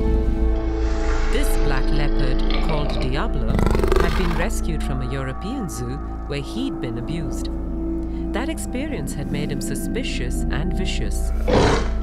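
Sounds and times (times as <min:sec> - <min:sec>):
background music: 0:00.0 - 0:12.0
leopard growling: 0:02.4 - 0:04.6, 0:11.4 - 0:12.0.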